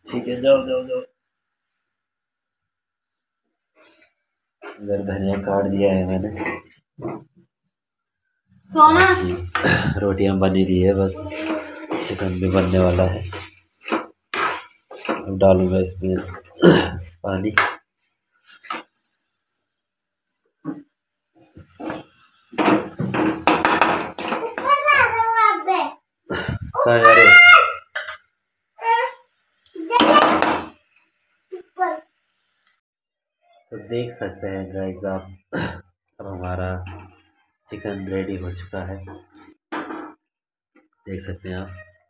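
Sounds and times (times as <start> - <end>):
chicken sizzling in a wok: 0.0 - 6.8, 8.4 - 32.8
man speaking: 4.8 - 6.6, 9.2 - 13.4, 15.2 - 17.6, 26.3 - 27.3, 33.7 - 37.0, 37.7 - 39.2, 41.1 - 41.8
child whining: 11.2 - 12.1
ladle knocking and scraping pan: 11.3 - 16.5, 21.5 - 24.7.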